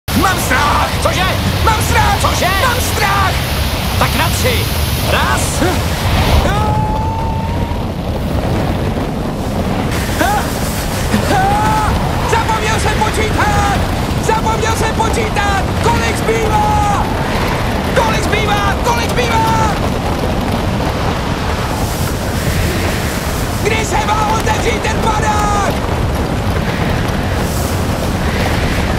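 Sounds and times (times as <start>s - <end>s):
loud wind rushing: 0.0s - 28.9s
long high cry: 6.4s - 8.0s, 10.0s - 12.7s.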